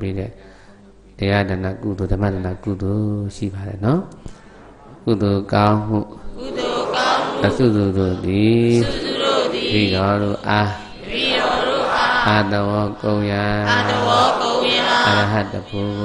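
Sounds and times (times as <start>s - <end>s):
man chanting: 7.2s - 16.0s.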